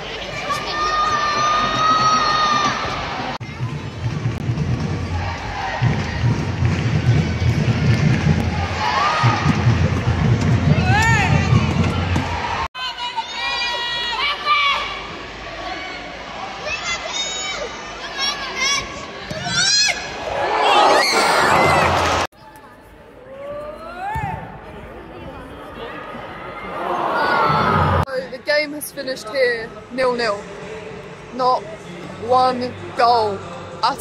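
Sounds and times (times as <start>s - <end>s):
stadium crowd noise: 0.0s - 34.0s.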